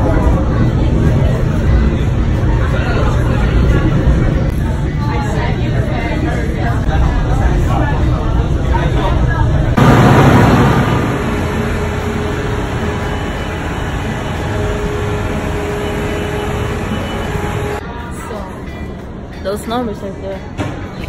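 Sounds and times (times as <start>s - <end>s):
train rumble inside carriage: 9.6s - 17.8s
city traffic noise: 9.8s - 18.1s.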